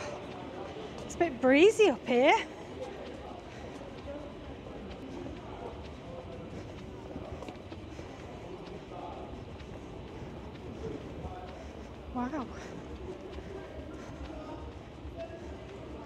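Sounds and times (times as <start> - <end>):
faint voices: 0.0 - 16.0
footsteps on paving: 0.0 - 16.0
wind rumbling on microphone: 4.5 - 16.0.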